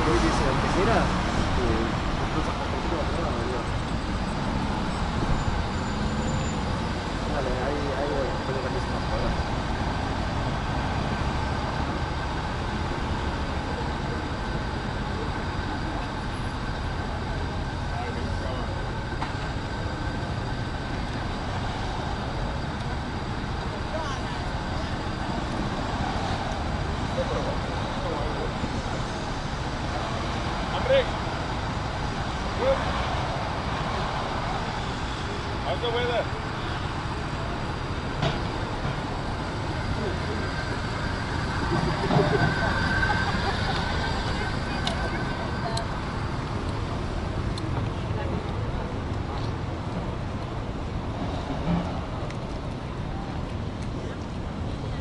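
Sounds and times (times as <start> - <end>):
road traffic rumble: 0.0 - 55.0.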